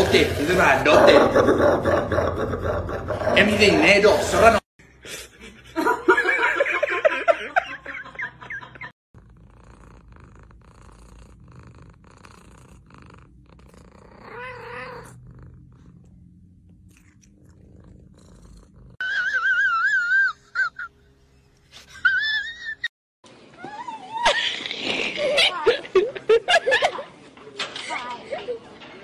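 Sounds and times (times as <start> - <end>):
cat purring: 9.2 - 19.0.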